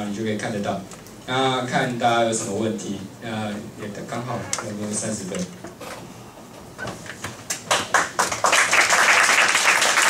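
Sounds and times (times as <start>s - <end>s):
audience applauding: 7.6s - 10.0s.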